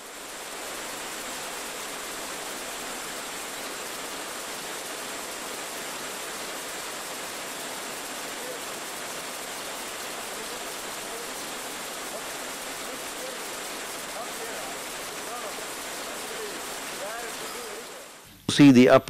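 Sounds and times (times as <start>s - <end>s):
faint high whine: 0.0s - 19.0s
film soundtrack hiss: 0.0s - 19.0s.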